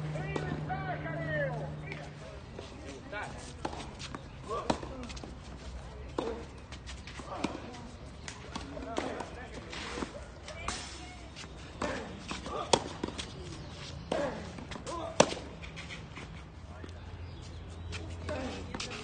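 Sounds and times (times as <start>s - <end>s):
tennis ball bouncing: 10.0s - 15.6s
racket hitting tennis ball: 11.8s - 13.4s, 14.1s - 15.6s.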